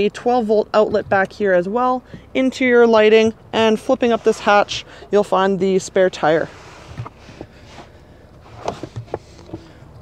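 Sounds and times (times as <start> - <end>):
handling clicks and knocks: 6.9 - 10.0.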